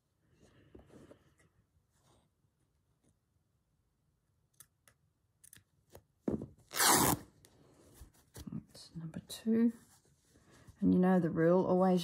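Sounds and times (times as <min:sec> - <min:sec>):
cloth ripping: 0:06.7 - 0:07.3.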